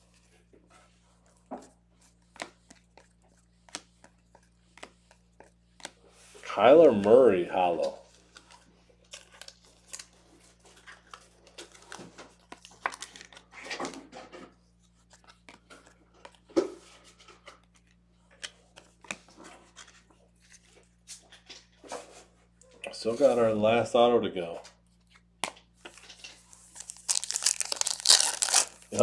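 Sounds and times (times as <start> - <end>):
trading cards being handled: 1.0 - 14.0, 14.7 - 22.2, 24.9 - 29.0.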